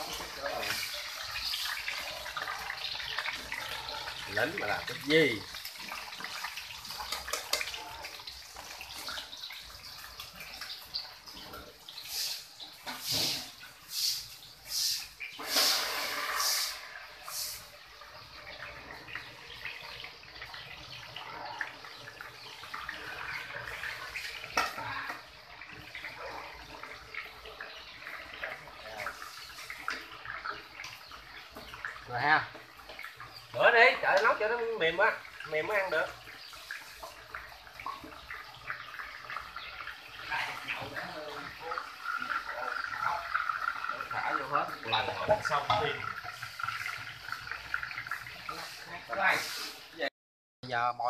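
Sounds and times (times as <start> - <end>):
fish deep-frying in hot oil: 0.0 - 50.1.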